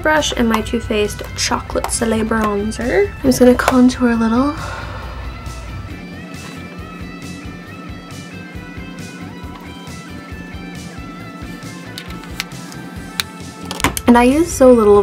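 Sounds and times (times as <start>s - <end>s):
instrumental background music: 0.0s - 15.0s.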